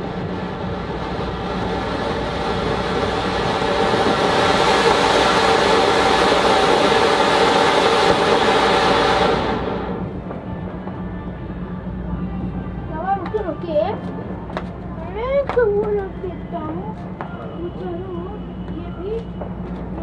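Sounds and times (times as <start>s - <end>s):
firework fountain hissing: 0.0s - 10.4s.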